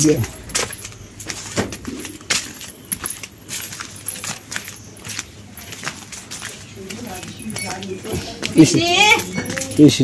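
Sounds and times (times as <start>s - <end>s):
footsteps on dirt path: 0.0s - 10.0s.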